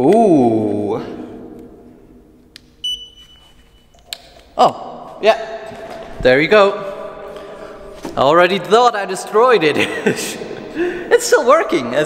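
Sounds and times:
click: 0:02.5 - 0:02.7, 0:03.9 - 0:04.3.

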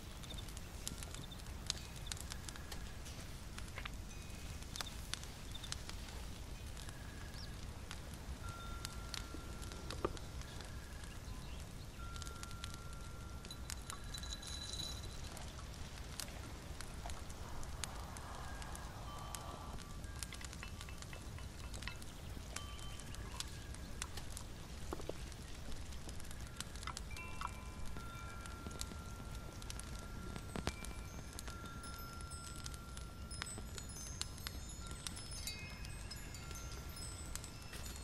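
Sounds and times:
low steady rumble: 0:00.0 - 0:33.0
faint tinkling chime tones: 0:00.0 - 0:38.0
small clicks: 0:06.8 - 0:38.0.

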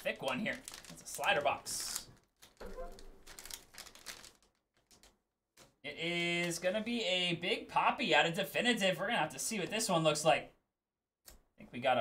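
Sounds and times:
plastic wrapper crinkling: 0:00.0 - 0:05.8.

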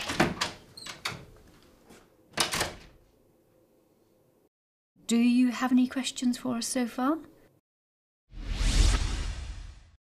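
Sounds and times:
whoosh sound effect: 0:08.3 - 0:10.0.

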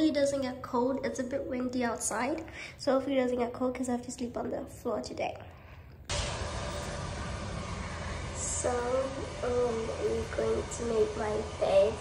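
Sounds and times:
low rumble: 0:06.1 - 0:12.0
steady hiss: 0:06.1 - 0:12.0.

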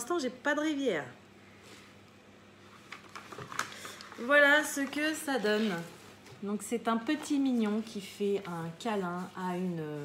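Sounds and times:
canvas and paper crackling: 0:03.0 - 0:06.2.

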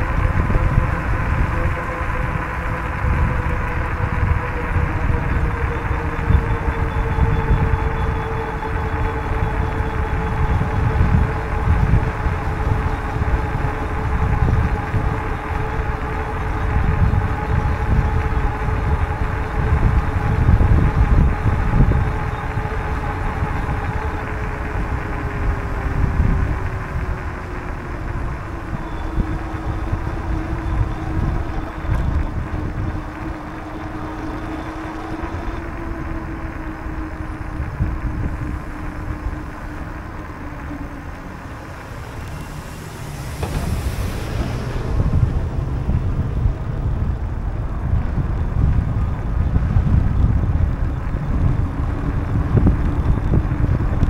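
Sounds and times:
faint steady hum: 0:00.0 - 0:54.0
wind buffeting microphone: 0:00.0 - 0:54.0.

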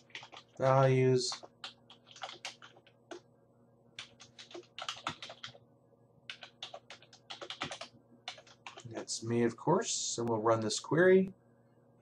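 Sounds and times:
computer keyboard typing: 0:00.0 - 0:00.7, 0:01.3 - 0:03.2, 0:04.0 - 0:05.6, 0:06.3 - 0:08.9.

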